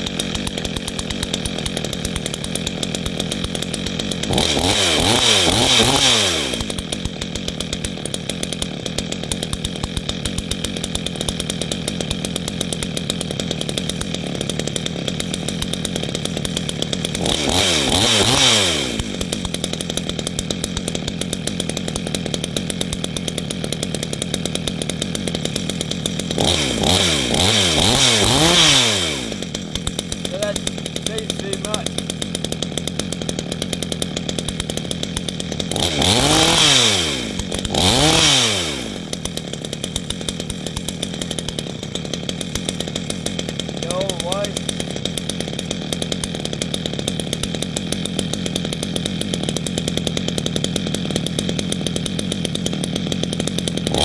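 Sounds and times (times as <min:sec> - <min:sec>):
chainsaw idling: 0:00.0 - 0:54.0
chainsaw revving: 0:00.0 - 0:54.0.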